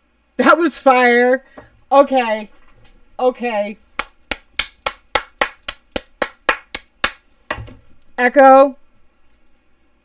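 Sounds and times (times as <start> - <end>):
woman clapping hands: 4.0 - 7.2.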